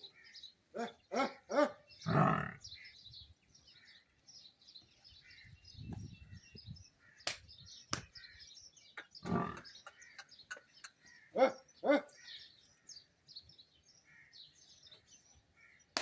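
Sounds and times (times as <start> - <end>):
small birds chirping: 0.0 - 16.0
short falling bird calls: 5.2 - 13.4.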